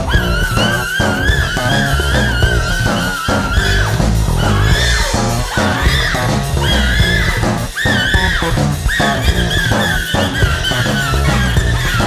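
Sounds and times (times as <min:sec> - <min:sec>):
instrumental rock music: 0:00.0 - 0:12.0
sliding bending guitar line: 0:00.0 - 0:12.0.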